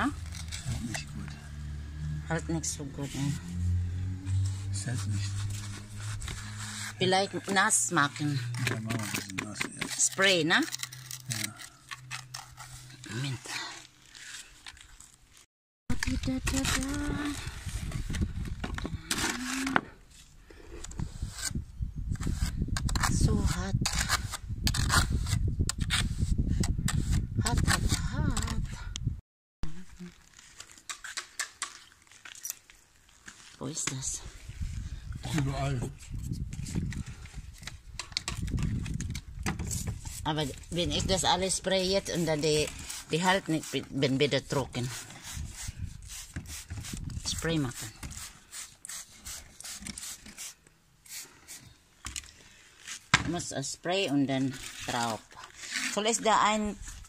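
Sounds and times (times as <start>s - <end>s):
trowel scraping mortar: 4.3s - 15.1s, 39.7s - 51.8s, 54.0s - 57.0s
spray bottle squirts: 48.2s - 51.6s.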